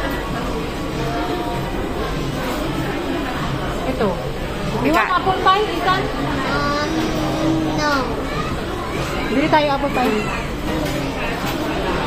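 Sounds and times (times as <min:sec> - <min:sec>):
indistinct voices: 0:04.3 - 0:12.0.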